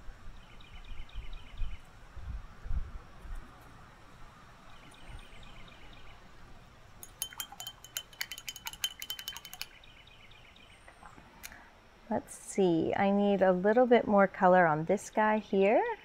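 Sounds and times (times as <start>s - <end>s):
paintbrush clinking against glass jar: 7.0s - 9.8s.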